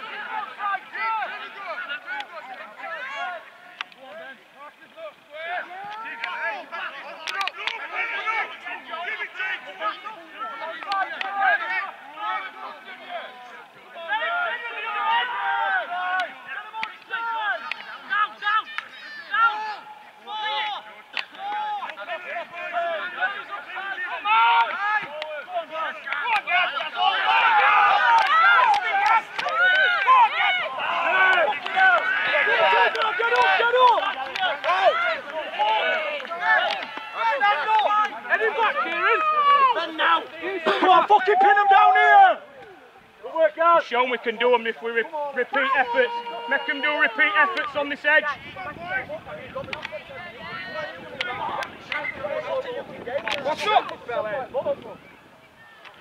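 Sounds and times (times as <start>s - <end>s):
men shouting calls: 0.0s - 55.0s.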